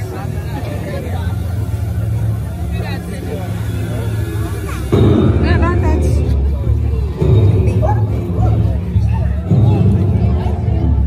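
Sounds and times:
indistinct voices: 0.0s - 11.0s.

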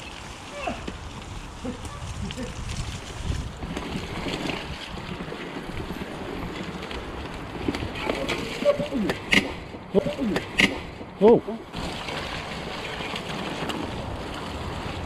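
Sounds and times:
bike rattling over rough ground: 0.0s - 15.0s
bike tyres squelching through mud: 0.0s - 15.0s.

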